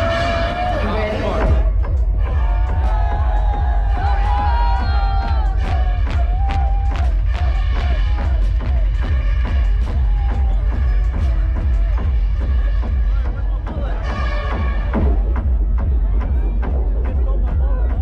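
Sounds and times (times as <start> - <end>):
crowd noise: 0.0 - 18.0
electronic dance music: 0.0 - 18.0.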